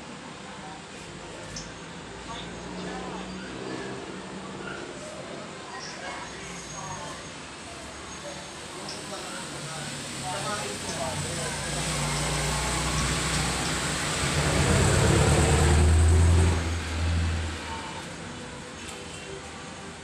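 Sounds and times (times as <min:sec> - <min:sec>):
motor vehicle passing: 0:09.6 - 0:18.1.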